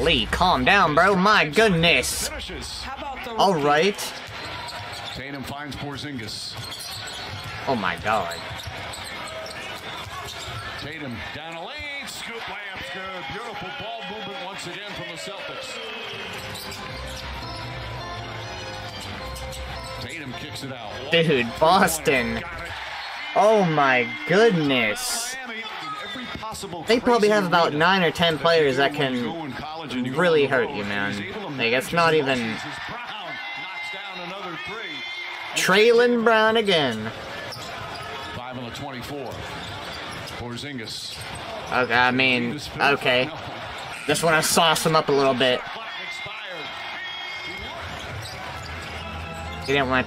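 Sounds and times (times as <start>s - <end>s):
arena music: 0.0s - 4.1s, 16.3s - 25.4s
crowd noise: 0.0s - 50.0s.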